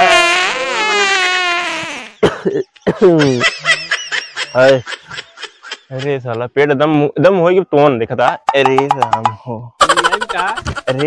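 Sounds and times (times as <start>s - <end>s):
man snickering and laughing: 2.2s - 6.2s, 9.8s - 11.0s.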